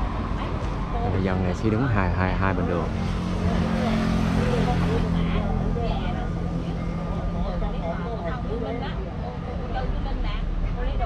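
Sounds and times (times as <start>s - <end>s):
people talking: 0.0s - 11.0s
vehicle engine humming: 0.0s - 11.0s.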